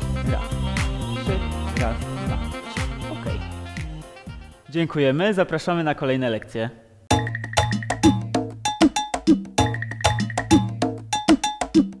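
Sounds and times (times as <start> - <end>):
jingle with ringing struck percussion: 7.1 - 11.7.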